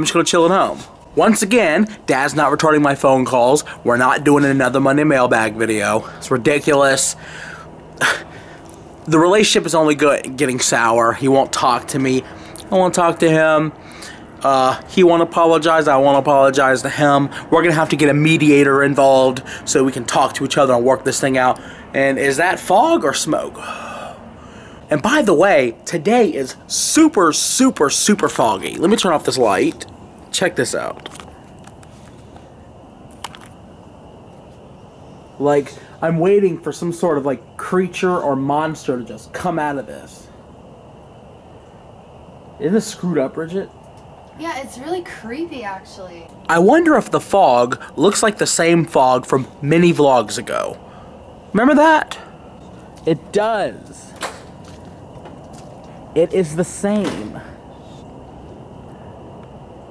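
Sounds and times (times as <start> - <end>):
low steady hiss: 0.0 - 59.9
sharp exhale: 7.2 - 8.7, 13.8 - 14.3, 23.6 - 24.8.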